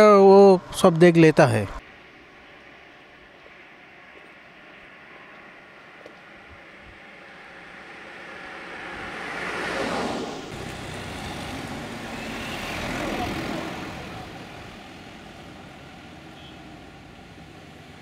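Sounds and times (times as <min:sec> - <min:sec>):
street traffic hum: 0:00.0 - 0:18.0
car passing close: 0:03.8 - 0:18.0.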